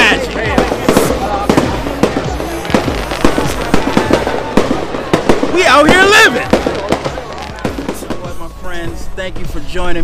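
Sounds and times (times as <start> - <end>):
crowd voices: 0.0 - 10.0
fireworks bangs and crackles: 0.0 - 10.0.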